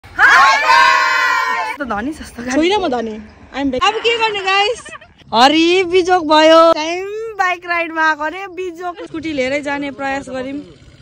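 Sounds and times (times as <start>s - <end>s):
group of people cheering: 0.1s - 1.8s.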